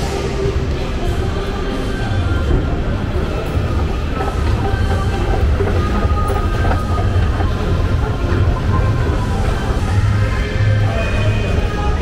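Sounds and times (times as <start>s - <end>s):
escalator running: 2.9s - 12.0s.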